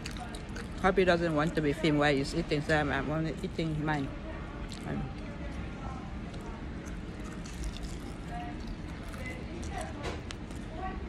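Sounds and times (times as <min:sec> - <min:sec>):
mouth sounds of eating: 0:00.0 - 0:00.9.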